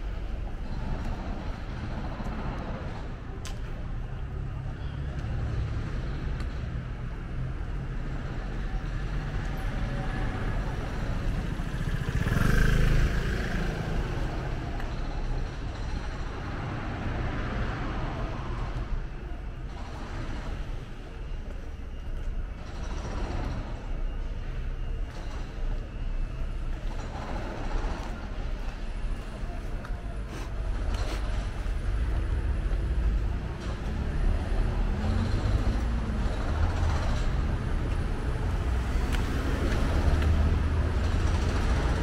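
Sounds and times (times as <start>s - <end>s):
low rumble of cars: 0.0s - 42.0s.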